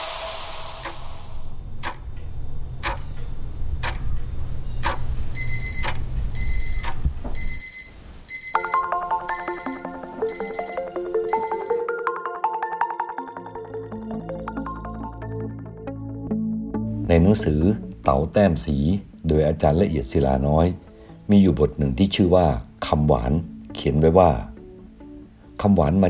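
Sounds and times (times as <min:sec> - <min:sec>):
alarm clock ringing: 0:00.8 - 0:11.9
clock ticking: 0:00.8 - 0:11.9
light music with mallet percussion: 0:08.4 - 0:15.1.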